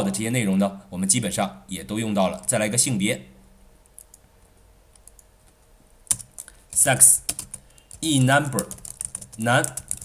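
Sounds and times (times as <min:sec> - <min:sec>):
computer keyboard key clicks: 0:06.1 - 0:06.5, 0:07.3 - 0:10.0.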